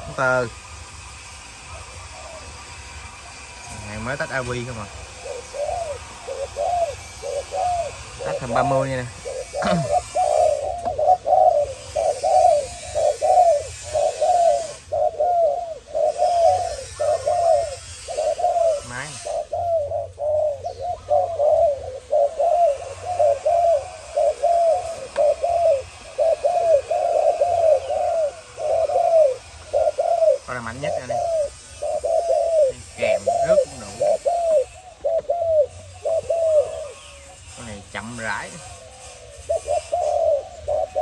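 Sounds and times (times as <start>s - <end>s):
doves cooing: 0.0s - 41.0s.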